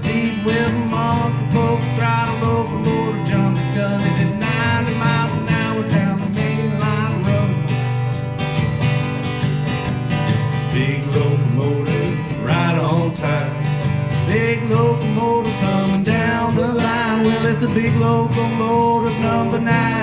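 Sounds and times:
acoustic guitars playing: 0:00.0 - 0:20.0.

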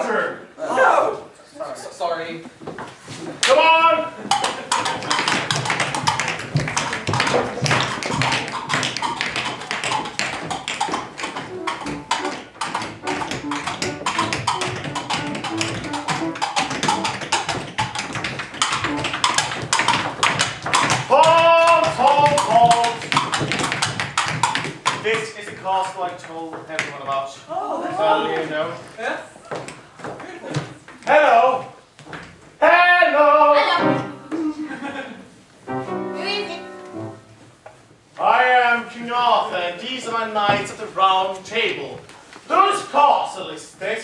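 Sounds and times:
person calling out: 0:21.1 - 0:22.9.

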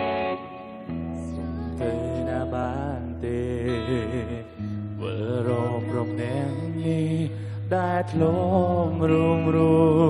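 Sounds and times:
electric guitar: 0:00.0 - 0:10.0
woman singing: 0:00.4 - 0:10.0.

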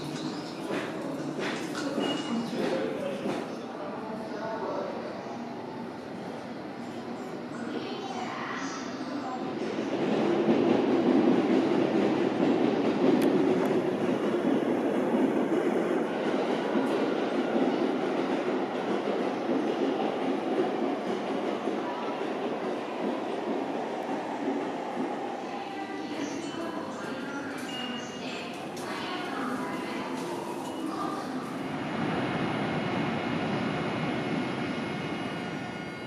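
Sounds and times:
train running on track: 0:00.0 - 0:36.0.

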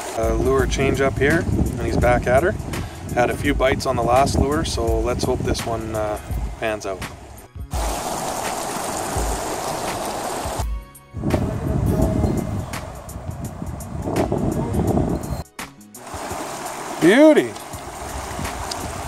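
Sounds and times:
river water over gravel: 0:00.0 - 0:02.8, 0:03.6 - 0:10.6, 0:16.0 - 0:19.0.

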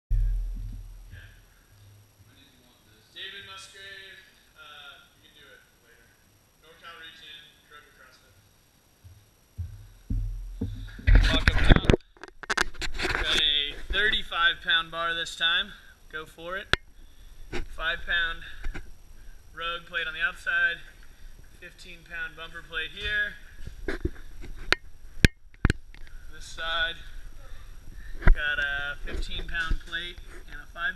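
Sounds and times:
voices: 0:02.2 - 0:08.4.

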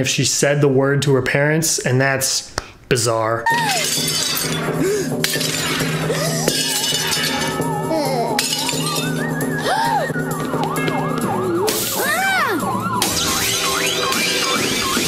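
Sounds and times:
swooping wavering tones: 0:03.5 - 0:15.0.

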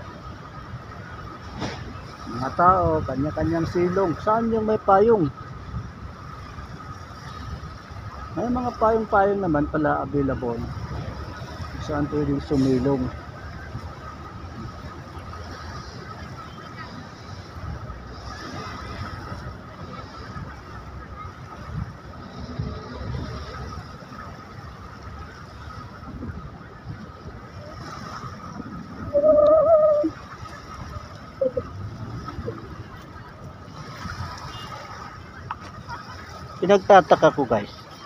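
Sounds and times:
outdoor background noise: 0:00.0 - 0:38.0
faint high tone: 0:29.0 - 0:30.2, 0:31.3 - 0:31.8.

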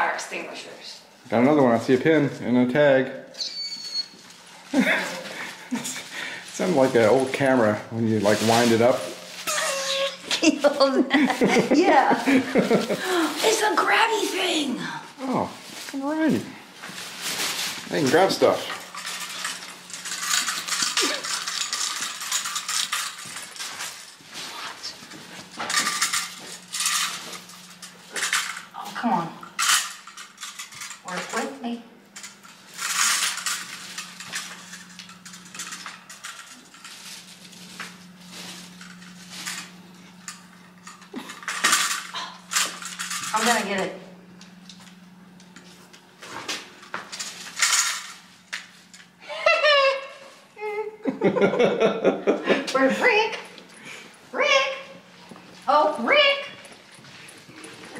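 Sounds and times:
faint steady hum: 0:00.0 - 0:57.9.

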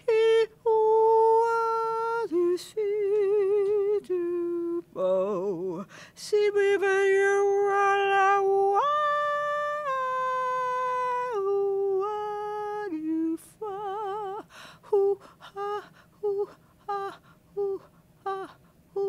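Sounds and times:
wordless singing voice: 0:00.0 - 0:19.0.

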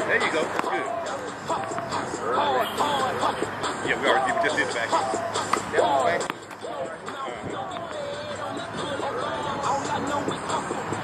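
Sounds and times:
hip-hop music with voice: 0:00.0 - 0:11.0.

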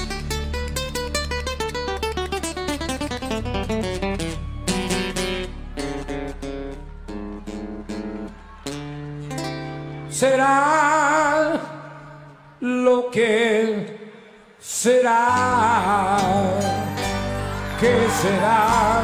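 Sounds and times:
solo acoustic guitar: 0:00.0 - 0:10.2.

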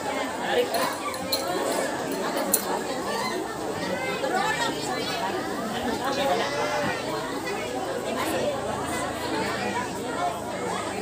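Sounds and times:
many voices chattering: 0:00.0 - 0:11.0.

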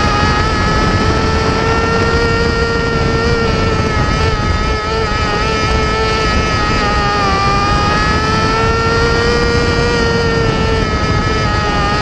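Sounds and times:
race car engine at high revs: 0:00.0 - 0:12.0.

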